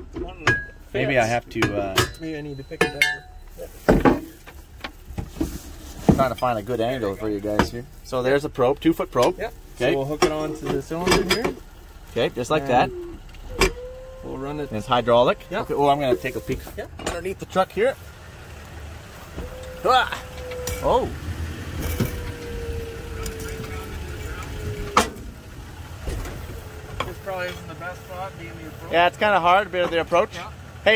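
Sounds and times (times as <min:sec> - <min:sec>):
low background rumble: 0:00.0 - 0:30.9
metal clinks: 0:01.7 - 0:04.4.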